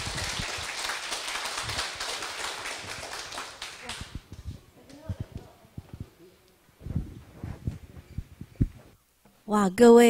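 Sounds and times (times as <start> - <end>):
crowd applauding: 0.0 - 4.2.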